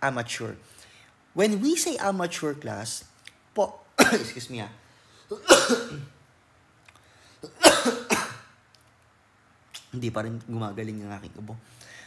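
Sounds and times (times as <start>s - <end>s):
person coughing: 4.0s - 4.4s, 5.3s - 6.2s, 7.4s - 8.5s.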